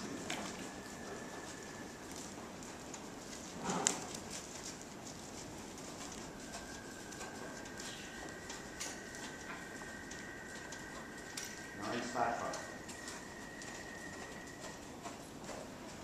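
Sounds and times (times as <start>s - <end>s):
thin steady high tone: 0.0s - 3.5s, 4.6s - 16.0s.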